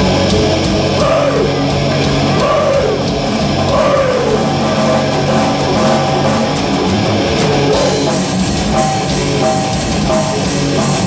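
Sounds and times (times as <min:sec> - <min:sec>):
guitar bending notes: 0:00.0 - 0:11.0
heavy metal band playing: 0:00.0 - 0:11.0.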